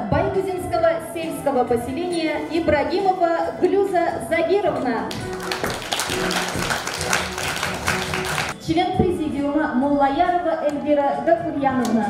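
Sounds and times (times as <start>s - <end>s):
background music: 0.0s - 12.0s
audience clapping: 5.1s - 8.6s.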